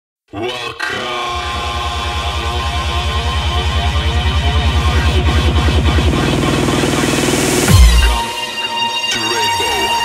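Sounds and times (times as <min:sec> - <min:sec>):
fast pulsing bass: 0:02.9 - 0:08.3
sustained synth chords: 0:03.8 - 0:09.1.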